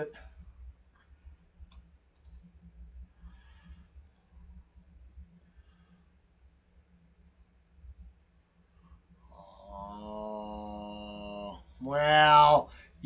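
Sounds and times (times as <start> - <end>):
steady low hum: 0.0 - 13.0
faint computer clicks: 1.6 - 2.6, 4.0 - 4.3.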